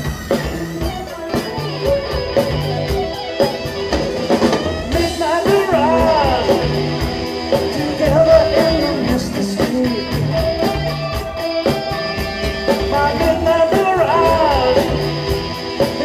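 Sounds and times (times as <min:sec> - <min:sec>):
drum kit steady beat: 0:00.0 - 0:16.0
rock band playing: 0:00.0 - 0:16.0.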